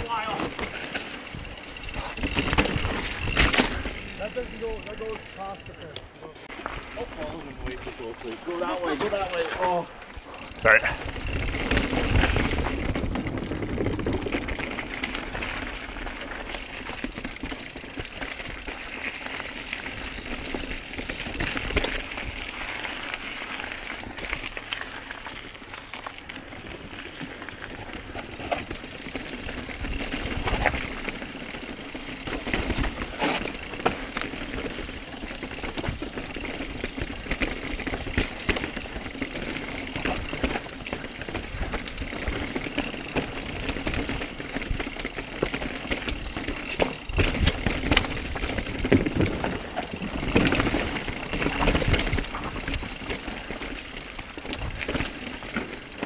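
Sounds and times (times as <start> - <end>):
bike rattling and knocking: 0.0 - 56.0
bike tyres on dirt and rock: 0.0 - 56.0.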